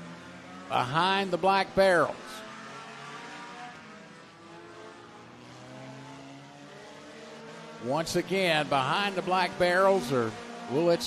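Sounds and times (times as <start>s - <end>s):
distant race car engines droning: 0.0s - 11.0s.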